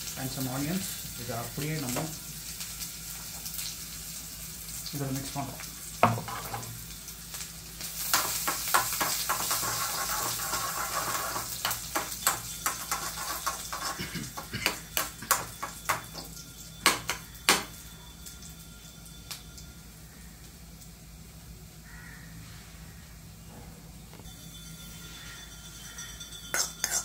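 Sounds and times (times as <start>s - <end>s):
hot oil sizzling: 0.0s - 23.0s
spoon stirring in pan: 6.0s - 6.8s, 8.0s - 17.8s.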